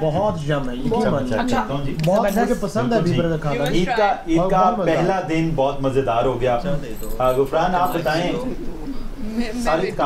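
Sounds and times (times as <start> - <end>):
man talking: 0.0 - 8.6.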